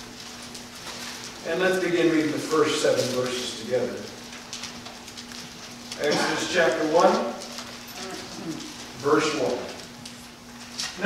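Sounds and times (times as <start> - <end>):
paper pages rustling: 0.0 - 11.0
steady low hum: 0.0 - 11.0.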